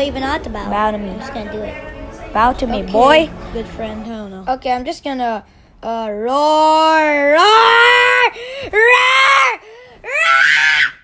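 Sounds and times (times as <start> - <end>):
young person screeching roar: 7.4 - 11.0.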